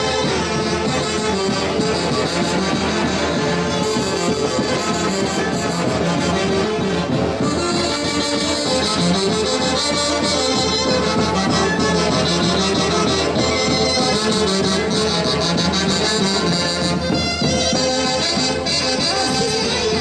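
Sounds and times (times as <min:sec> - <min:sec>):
folk dance music with wind instruments: 0:00.0 - 0:20.0.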